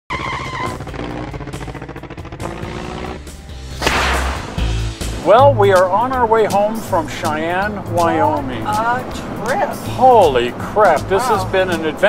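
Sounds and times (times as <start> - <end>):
car sound effects: 0.1 - 12.0
animated theme music: 0.7 - 12.0
swish: 3.7 - 4.8.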